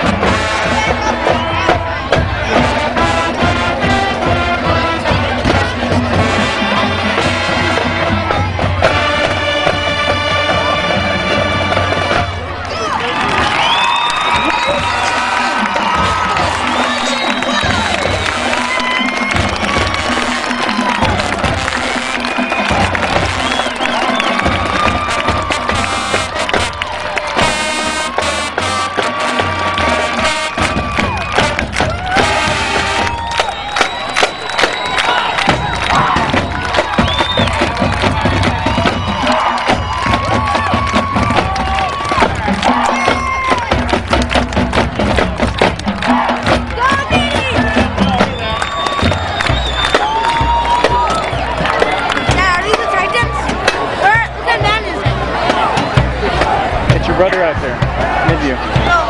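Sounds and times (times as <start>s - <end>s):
drum strikes: 0.0s - 12.4s, 13.2s - 59.0s
marching band playing: 0.0s - 59.0s
stadium crowd cheering: 0.0s - 59.0s.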